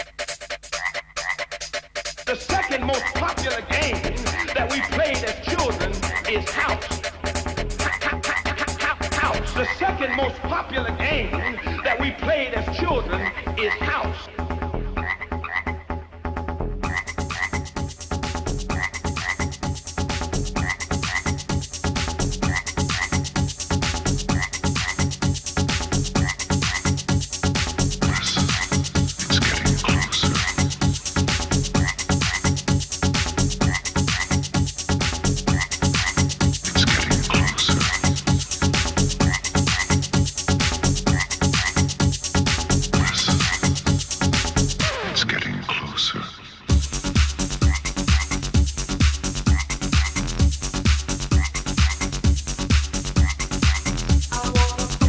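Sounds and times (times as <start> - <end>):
electronic dance music: 0.0 - 55.0.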